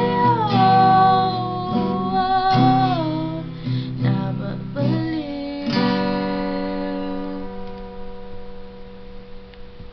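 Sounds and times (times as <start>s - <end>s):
acoustic guitar chord ringing: 0.0s - 9.8s.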